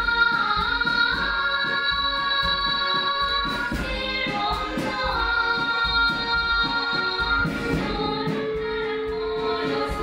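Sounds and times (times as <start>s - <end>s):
girls singing: 0.0s - 10.0s
instrumental accompaniment with beat: 0.0s - 10.0s.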